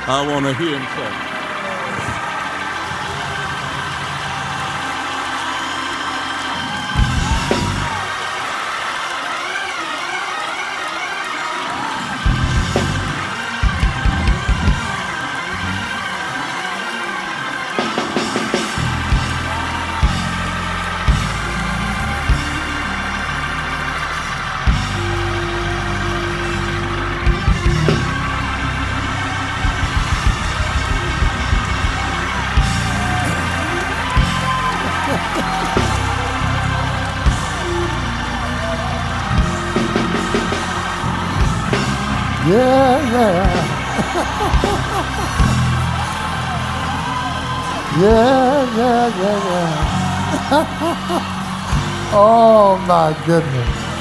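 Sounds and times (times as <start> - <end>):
bass line: 0.0 - 9.9, 11.8 - 16.9, 17.8 - 54.0
keyboard chords: 0.0 - 54.0
voices shouting and cheering: 0.0 - 54.0.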